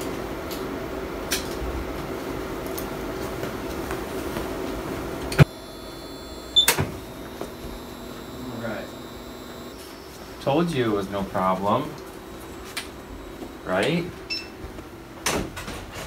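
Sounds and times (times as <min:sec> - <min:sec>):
x-ray machine humming: 0:00.0 - 0:15.4.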